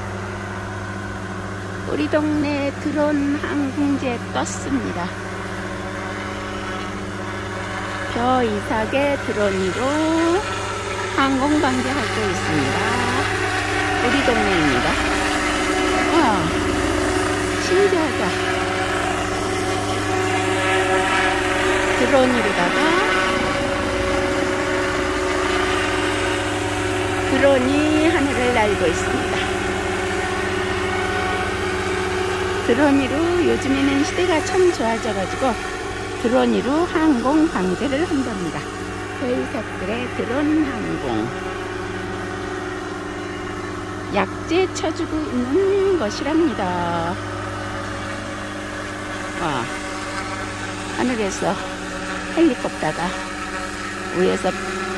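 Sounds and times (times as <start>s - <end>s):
helicopter engine and rotor drone: 0.0s - 54.9s.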